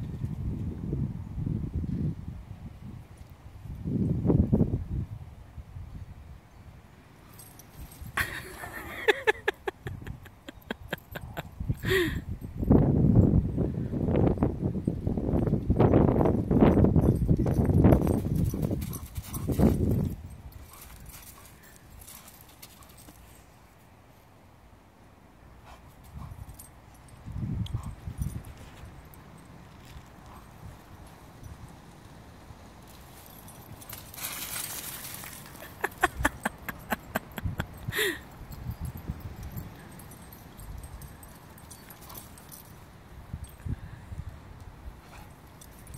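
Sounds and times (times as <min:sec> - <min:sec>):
collar tags jingling: 0:07.1 - 0:13.5, 0:14.3 - 0:24.2, 0:25.5 - 0:45.9.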